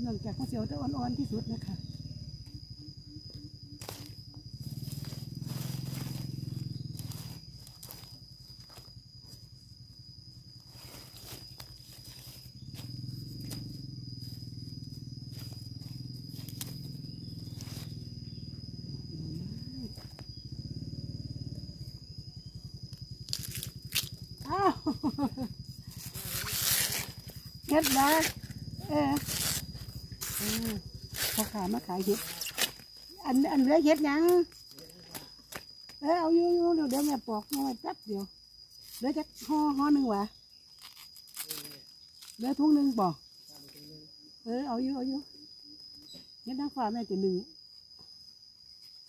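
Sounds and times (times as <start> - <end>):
knife cutting bamboo shoots: 23.3 - 24.1, 29.2 - 32.8, 40.7 - 42.4.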